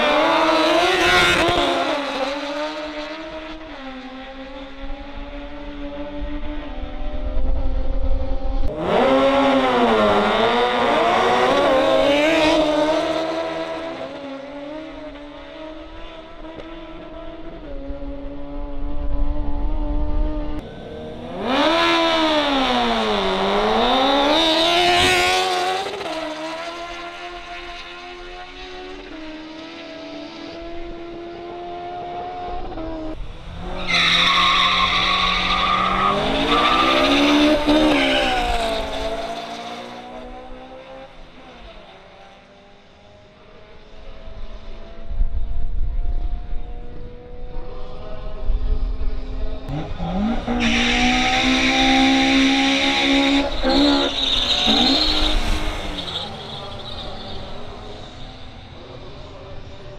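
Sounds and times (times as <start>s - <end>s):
motorcycles accelerating hard: 0.0s - 33.8s, 34.8s - 41.3s, 45.9s - 59.9s
racing cars accelerating: 0.0s - 45.1s, 45.9s - 59.9s.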